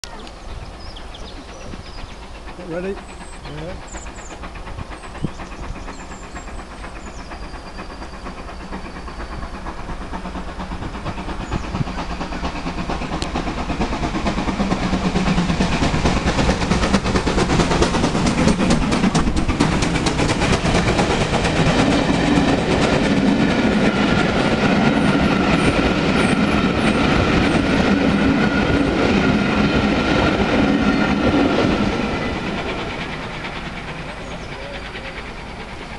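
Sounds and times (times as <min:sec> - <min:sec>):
coach wheels running on rails: 0:00.0 - 0:35.9
steam train passing: 0:00.0 - 0:35.9.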